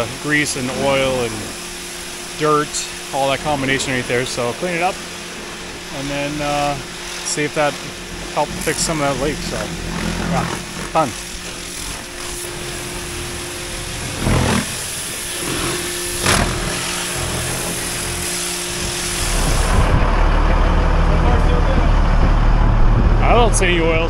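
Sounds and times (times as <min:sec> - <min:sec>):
pressure washer spraying: 0:00.0 - 0:20.0
low steady rumble: 0:00.0 - 0:24.0.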